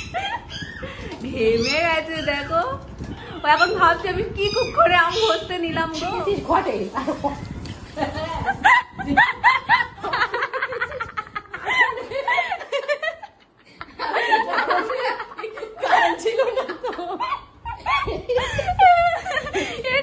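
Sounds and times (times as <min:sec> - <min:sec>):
women laughing: 0:00.0 - 0:01.1, 0:08.0 - 0:20.0.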